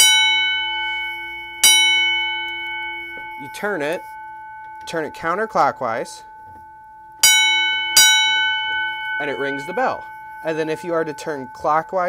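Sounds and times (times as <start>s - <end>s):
fire alarm bell strokes: 0.0s - 12.0s.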